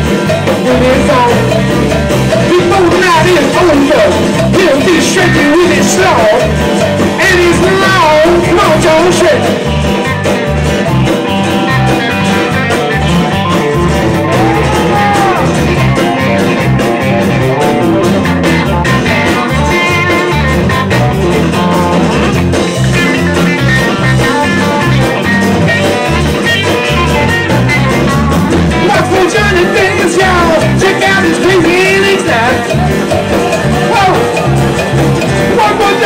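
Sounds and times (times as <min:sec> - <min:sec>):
acoustic guitar: 0:00.0 - 0:36.0
electric guitar lead line bending: 0:00.0 - 0:36.0
steady drum beat: 0:00.0 - 0:36.0.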